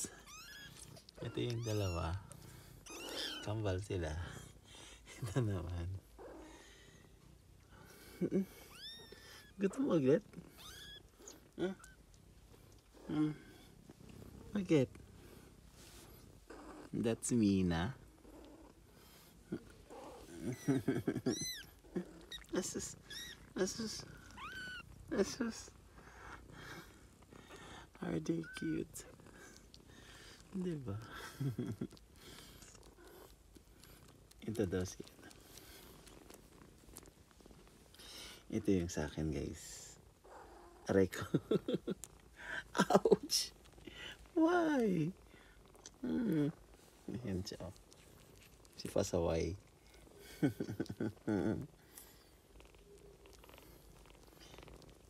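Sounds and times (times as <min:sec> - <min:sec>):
kitten mewing: 0:00.0 - 0:03.5, 0:19.5 - 0:25.7
cat purring: 0:00.0 - 0:55.0.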